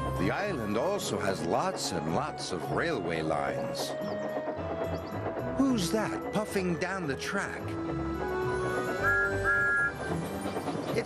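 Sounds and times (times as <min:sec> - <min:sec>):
background music: 0:00.0 - 0:11.0
steam locomotive whistle toots: 0:08.3 - 0:10.3.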